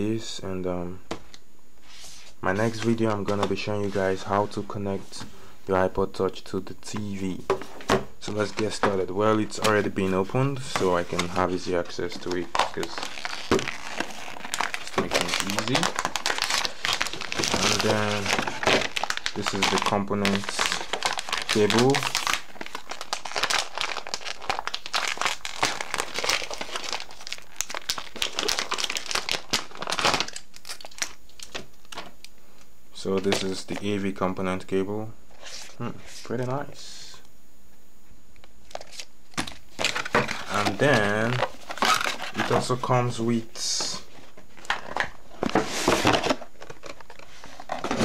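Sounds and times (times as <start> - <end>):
cardboard packaging rustling: 6.9 - 32.2, 38.7 - 48.0.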